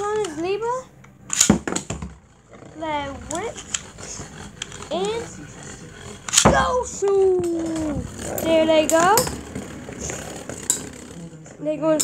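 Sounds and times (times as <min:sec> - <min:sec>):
spinning tops whirring and scraping: 0:00.0 - 0:12.0.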